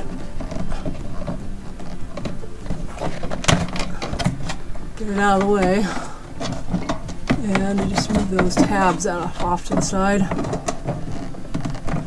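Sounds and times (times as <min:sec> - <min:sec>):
light plastic rubbing and tapping: 0:00.0 - 0:12.0.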